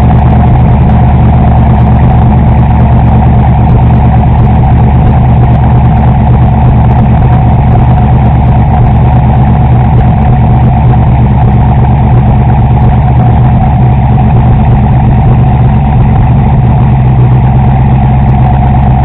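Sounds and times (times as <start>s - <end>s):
car engine idling loudly: 0.0s - 19.0s.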